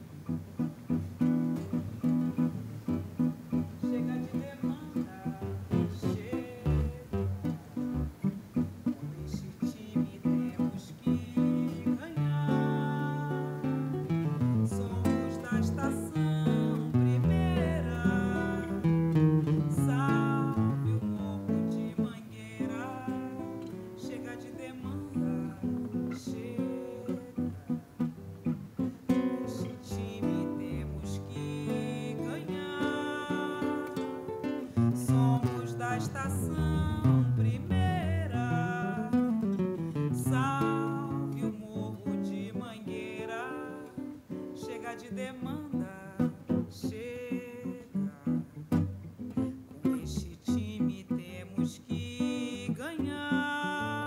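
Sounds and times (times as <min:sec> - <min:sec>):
acoustic guitar playing samba: 0:00.0 - 0:54.0.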